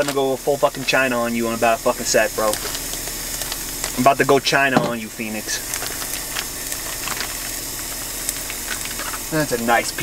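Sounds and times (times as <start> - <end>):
gas burner hissing: 0.0 - 10.0
onions frying in butter: 0.0 - 10.0.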